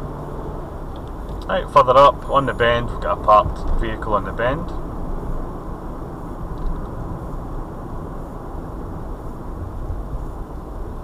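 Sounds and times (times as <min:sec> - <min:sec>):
car cabin driving hum: 0:00.0 - 0:11.0.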